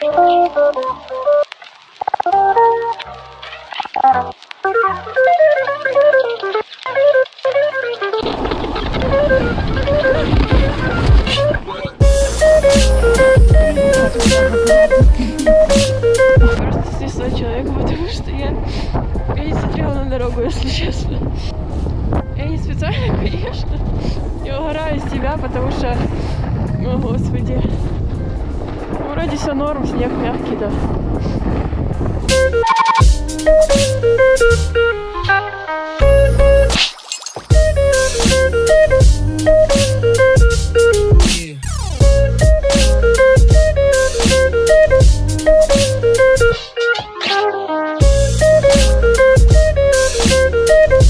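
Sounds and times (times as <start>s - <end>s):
wind on microphone: 8.2s - 35.3s, 42.0s - 46.6s, 48.0s - 51.0s
background music: 10.6s - 16.6s, 32.3s - 36.9s, 37.5s - 51.0s.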